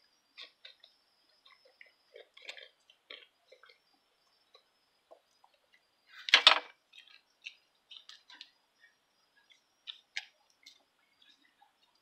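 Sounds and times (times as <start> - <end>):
goat crunching carrots: 1.5 - 3.8.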